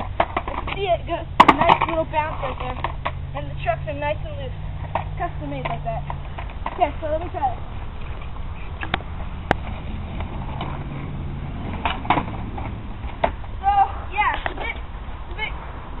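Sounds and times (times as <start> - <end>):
skateboard clacking on pavement: 0.0 - 4.1, 4.8 - 7.6, 8.2 - 14.8
skateboard wheels rolling on asphalt: 0.0 - 16.0.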